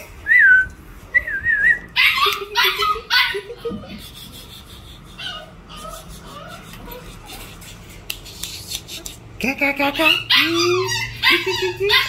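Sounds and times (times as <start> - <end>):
puppy whining: 1.2 - 7.7, 10.0 - 12.0
puppy yipping: 1.9 - 3.6, 5.2 - 7.4, 10.0 - 12.0.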